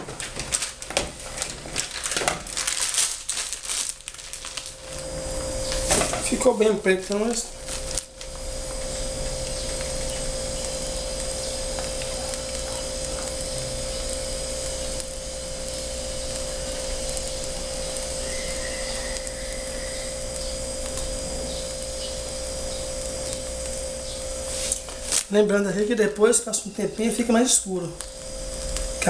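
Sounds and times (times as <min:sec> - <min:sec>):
machine whir with low hum: 0:00.0 - 0:29.0
faint higher tone: 0:18.2 - 0:20.2.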